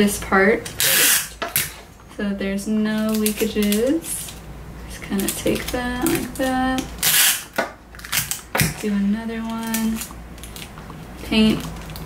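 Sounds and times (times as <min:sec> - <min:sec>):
tape pulled and torn: 0:00.8 - 0:01.8, 0:07.0 - 0:08.4
cellophane crinkling and clicks: 0:05.1 - 0:07.4, 0:09.4 - 0:12.0.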